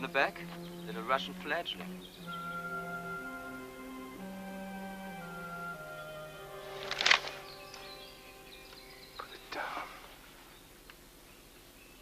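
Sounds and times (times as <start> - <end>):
orchestral held chords: 0.0 - 9.7.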